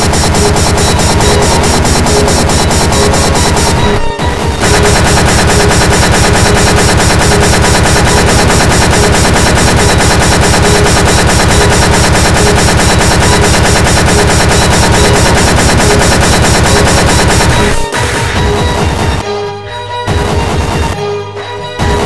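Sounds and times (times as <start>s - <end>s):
fast distorted kick drum: 0.0s - 19.2s, 20.1s - 21.0s, 21.8s - 22.0s
sustained synth tones: 0.0s - 19.2s.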